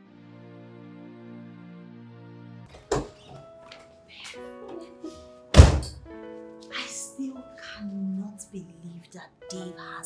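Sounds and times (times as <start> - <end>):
soft background music: 0.0 - 10.0
loud heavy thunk: 5.5 - 6.1.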